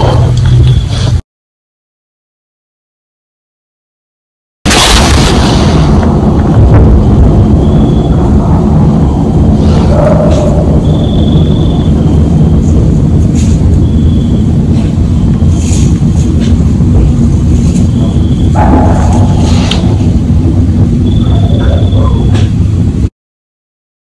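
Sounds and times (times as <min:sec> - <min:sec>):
low rumble and hiss: 0:04.7 - 0:23.1.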